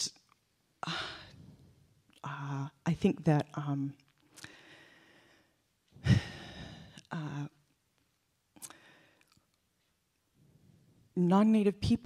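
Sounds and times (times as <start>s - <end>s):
woman sighing: 0.8s - 1.4s, 6.0s - 7.5s.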